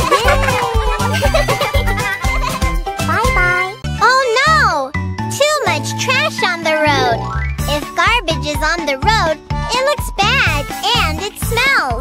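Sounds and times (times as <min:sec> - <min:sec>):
children's background music: 0:00.0 - 0:12.0.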